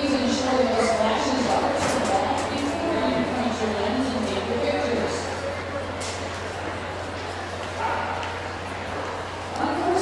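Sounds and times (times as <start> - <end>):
indoor arena background noise: 0.0 - 10.0
dog barking: 7.8 - 8.4.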